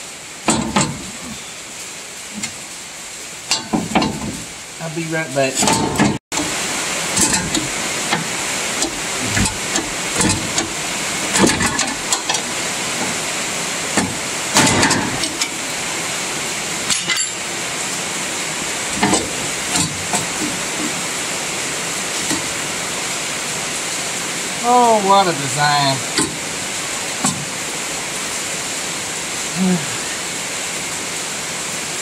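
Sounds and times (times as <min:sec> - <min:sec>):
steady hiss: 0:00.0 - 0:32.0
metal tools knocking on steel frame: 0:03.5 - 0:04.4, 0:07.2 - 0:13.2, 0:16.9 - 0:17.5, 0:19.0 - 0:21.1.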